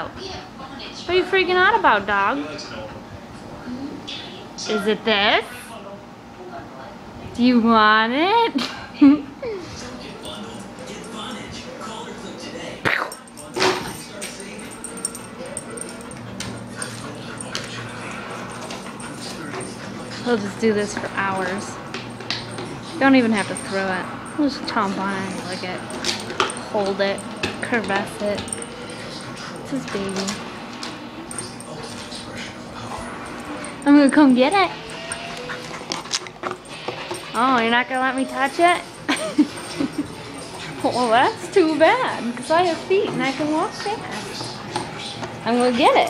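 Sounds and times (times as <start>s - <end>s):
dog whining: 34.6s - 37.4s
dog yelping: 34.7s - 36.0s.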